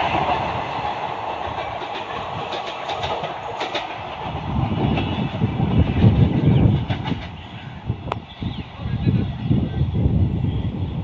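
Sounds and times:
train rumble: 0:00.0 - 0:11.0.

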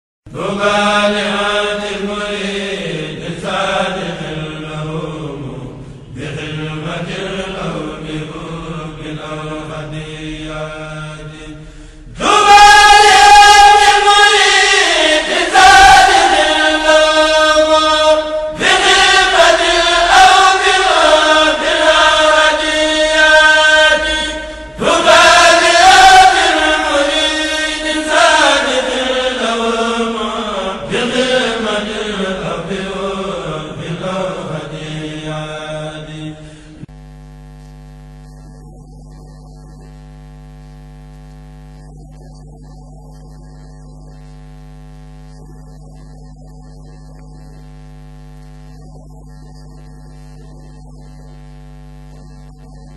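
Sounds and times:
person chanting religious poem: 0:00.3 - 0:36.9.

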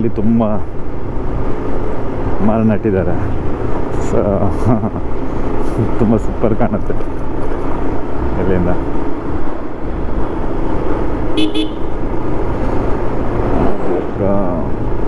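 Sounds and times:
motorcycle running: 0:00.0 - 0:15.0
vehicle horn toots: 0:11.4 - 0:12.0.

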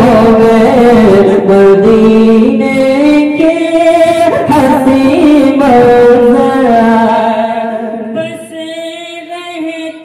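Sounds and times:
man singing unaccompanied: 0:00.0 - 0:10.0.

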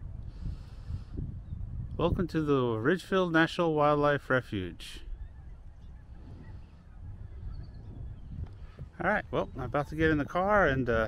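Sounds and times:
low rumble on microphone: 0:00.0 - 0:02.5, 0:04.8 - 0:11.0
distant bird calls: 0:04.6 - 0:11.0.

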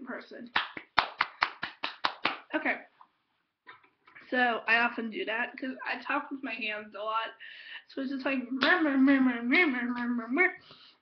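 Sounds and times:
person clapping hands: 0:00.5 - 0:02.5.

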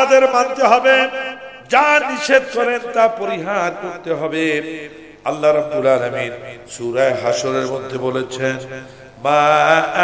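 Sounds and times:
man chanting a sermon: 0:00.0 - 0:10.0.

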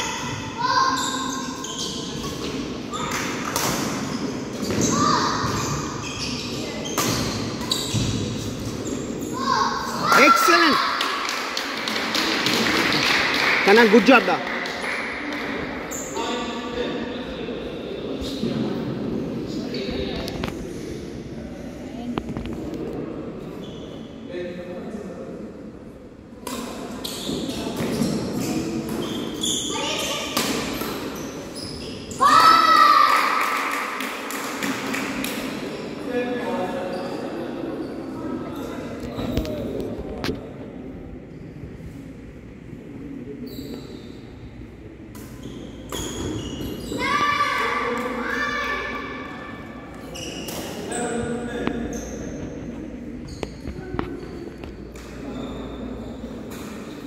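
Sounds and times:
shoe squeaks: 0:00.7 - 0:03.1, 0:04.0 - 0:10.8, 0:15.9 - 0:16.4, 0:27.0 - 0:32.4, 0:43.4 - 0:44.4, 0:45.4 - 0:47.6, 0:50.0 - 0:57.0
loud high-pitched shout: 0:09.4 - 0:11.0, 0:32.2 - 0:33.5.

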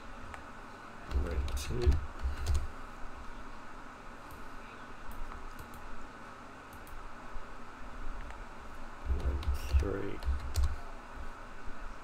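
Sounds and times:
typing on computer keyboard: 0:01.1 - 0:02.7, 0:09.1 - 0:10.8.

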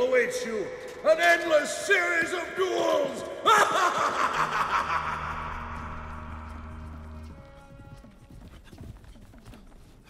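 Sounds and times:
man laughing: 0:03.4 - 0:06.1.

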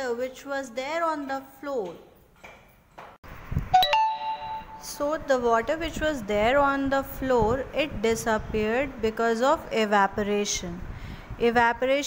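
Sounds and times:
two-note notification ding: 0:03.7 - 0:05.0.

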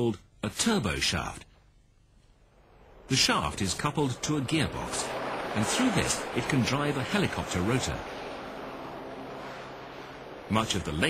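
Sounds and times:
helicopter hovering: 0:02.6 - 0:11.0.

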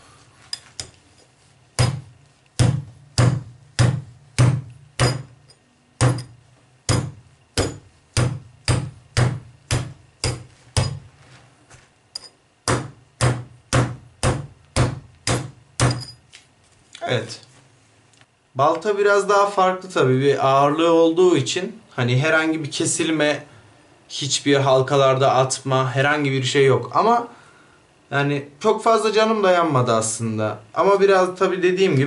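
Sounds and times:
axe striking chainmail: 0:05.0 - 0:07.9, 0:12.2 - 0:12.4, 0:15.4 - 0:16.3.

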